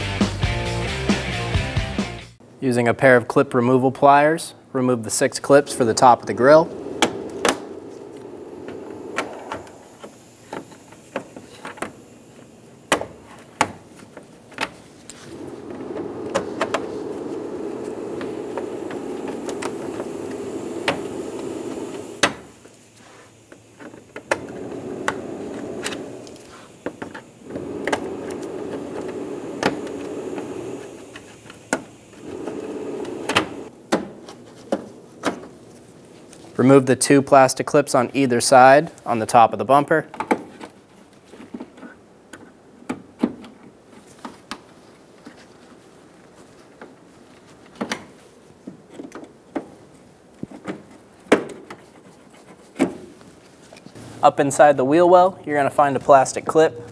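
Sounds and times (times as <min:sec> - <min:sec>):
steady low hum: 0:04.6 - 0:39.0.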